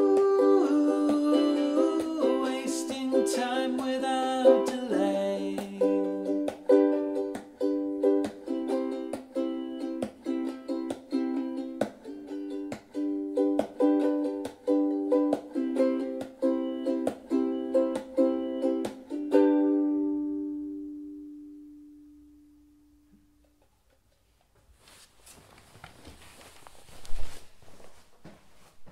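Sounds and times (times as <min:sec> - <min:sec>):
ukulele strumming: 0:00.0 - 0:23.7.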